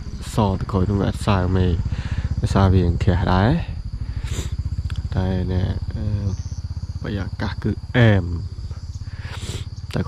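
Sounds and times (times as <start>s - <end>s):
man speaking: 0.0s - 6.4s, 7.0s - 10.0s
insects droning: 0.0s - 10.0s.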